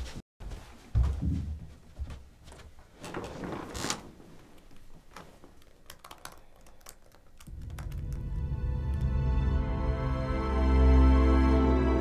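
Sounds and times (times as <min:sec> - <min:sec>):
laptop keyboard typing: 0:05.6 - 0:08.6
low film score music: 0:07.6 - 0:12.0.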